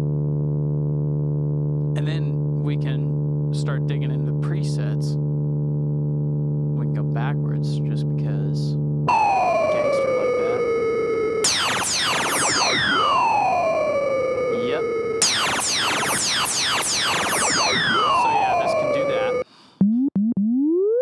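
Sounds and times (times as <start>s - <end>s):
low falling synth tone: 9.1s - 21.0s
synthesizer downward pitch sweeps: 9.1s - 21.0s.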